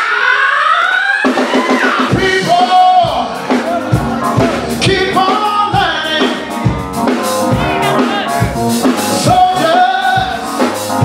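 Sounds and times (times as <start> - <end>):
drum kit: 1.2 - 11.0
electronic keyboard: 2.1 - 11.0.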